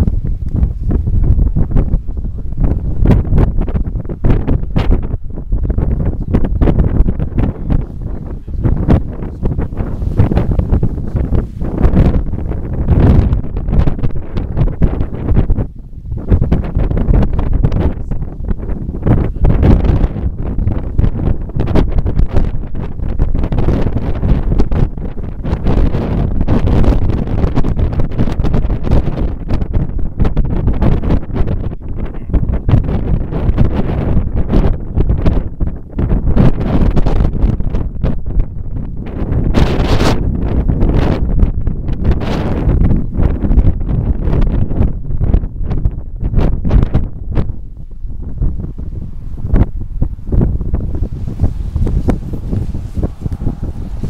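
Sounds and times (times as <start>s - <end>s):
strong wind buffeting microphone: 0.0s - 54.0s.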